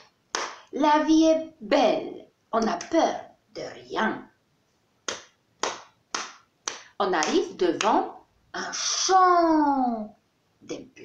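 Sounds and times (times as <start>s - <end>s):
sharp hand beats: 5.1s - 8.0s.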